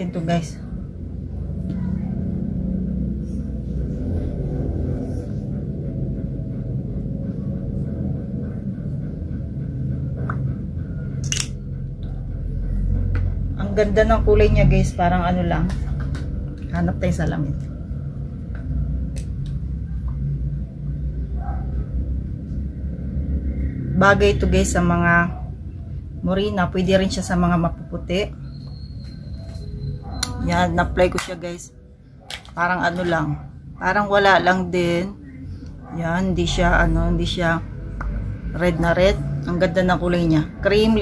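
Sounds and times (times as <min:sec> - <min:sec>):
constant hum: 0:00.0 - 0:41.0
steady low rumble: 0:00.0 - 0:41.0.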